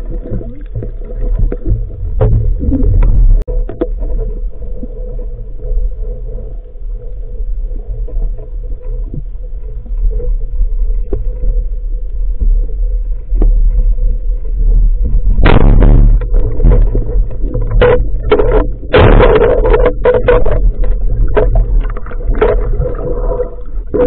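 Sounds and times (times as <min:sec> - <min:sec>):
low underwater rumble: 0:00.0 - 0:24.0.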